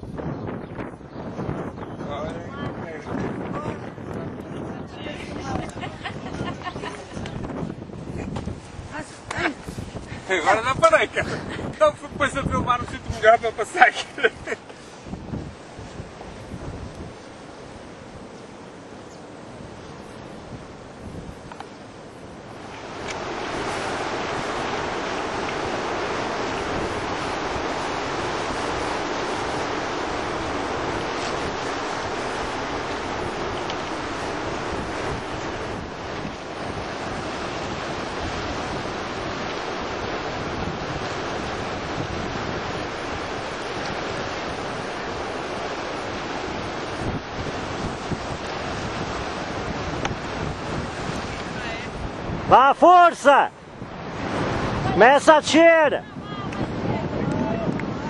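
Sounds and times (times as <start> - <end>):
wind noise on microphone: 0.0 - 58.0
surf breaking on pebbles: 22.4 - 53.5.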